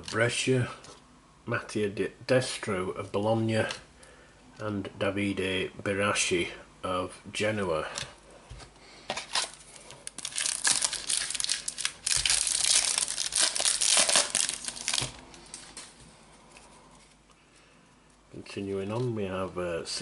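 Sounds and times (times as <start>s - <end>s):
foil wrapper crinkling and tearing: 9.2s - 16.0s.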